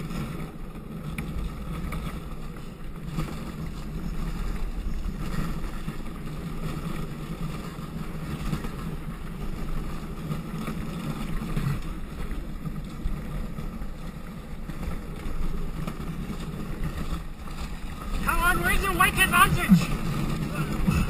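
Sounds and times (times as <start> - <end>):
wheels rolling on wet asphalt: 0.0 - 21.0.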